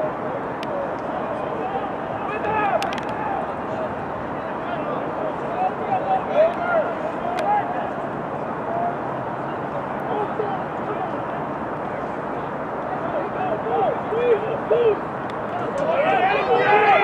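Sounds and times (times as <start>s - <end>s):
outdoor background noise: 0.0s - 17.0s
distant shouts and calls: 1.1s - 11.5s, 12.4s - 17.0s.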